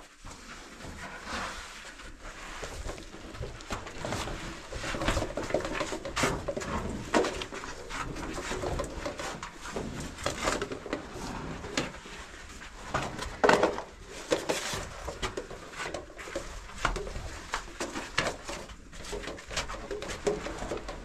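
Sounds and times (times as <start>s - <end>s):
clothing and gear scraping rock: 0.4s - 13.4s.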